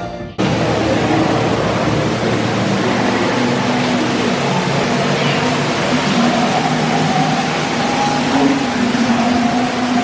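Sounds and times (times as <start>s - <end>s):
indoor waterfall rushing: 0.4s - 10.0s.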